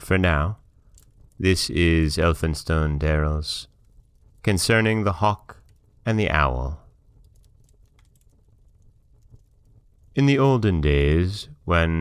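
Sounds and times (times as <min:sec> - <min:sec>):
faint clicks: 0:00.8 - 0:01.4, 0:05.5 - 0:06.1, 0:07.0 - 0:10.2.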